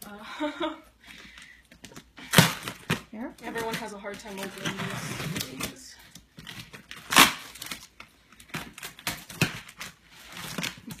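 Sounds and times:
cardboard crinkling: 0:01.3 - 0:11.0.

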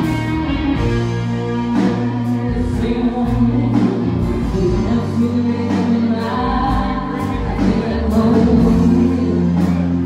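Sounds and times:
live country band playing: 0:00.0 - 0:10.0
woman singing: 0:01.7 - 0:10.0.

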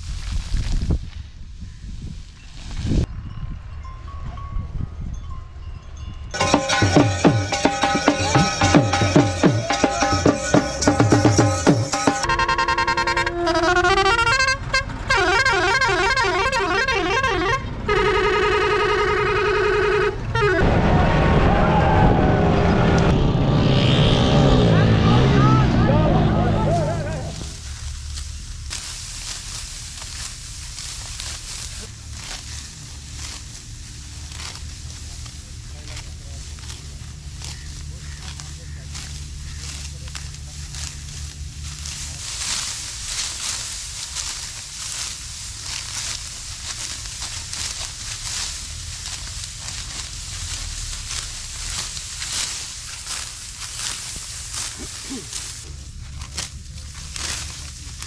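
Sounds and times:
wheat stalks crackling being cut: 0:00.0 - 0:01.3, 0:06.4 - 0:12.4, 0:23.7 - 0:58.0.

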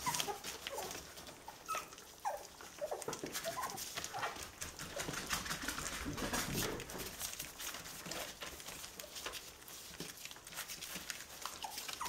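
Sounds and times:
puppies whimpering: 0:00.0 - 0:05.1, 0:10.8 - 0:12.0
paws rustling on newspaper: 0:00.0 - 0:12.0.

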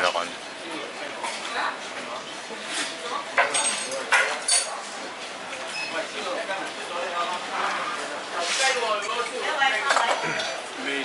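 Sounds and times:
people chattering: 0:00.0 - 0:11.0
crockery and cutlery clinking: 0:03.4 - 0:04.8.

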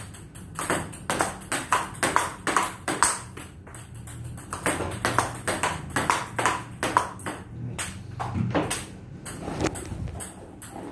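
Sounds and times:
table tennis ball hits: 0:00.0 - 0:10.9.

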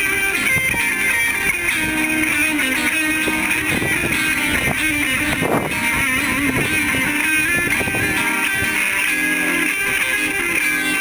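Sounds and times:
electric guitar latin groove: 0:00.0 - 0:11.0.

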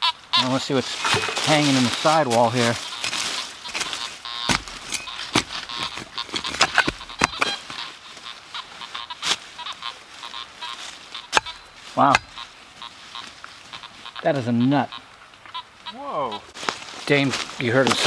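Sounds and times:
digging tool chopping rocky soil: 0:03.7 - 0:07.6, 0:11.3 - 0:12.4
person exclaiming: 0:15.9 - 0:16.4.

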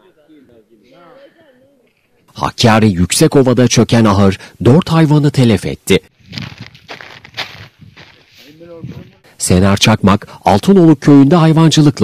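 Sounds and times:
crunching and rustling: 0:06.2 - 0:09.2.

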